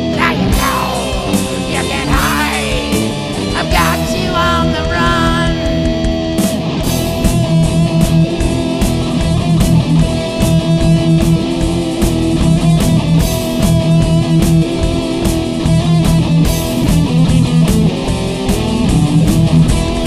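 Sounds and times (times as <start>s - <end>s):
bass guitar: 0.0s - 20.0s
electric guitars: 0.0s - 20.0s
drum hits: 0.3s - 12.0s.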